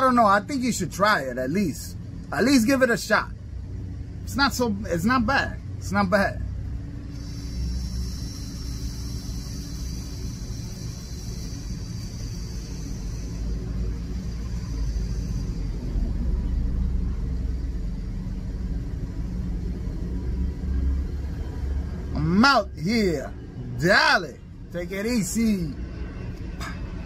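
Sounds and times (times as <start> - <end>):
steady low rumble: 0.0 - 27.0
e-cigarette hiss and sizzle: 7.1 - 16.2.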